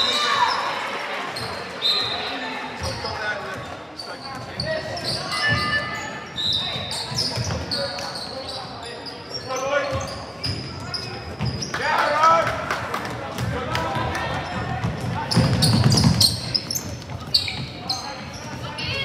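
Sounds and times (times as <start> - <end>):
sneakers squeaking: 0.0 - 11.8, 14.1 - 19.0.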